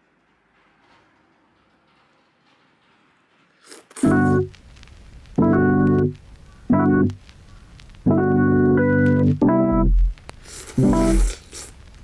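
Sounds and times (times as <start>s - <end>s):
piano music: 4.0s - 4.5s, 5.4s - 7.2s, 8.1s - 10.2s
piano chords: 4.0s - 4.6s, 5.4s - 7.2s, 8.0s - 10.2s.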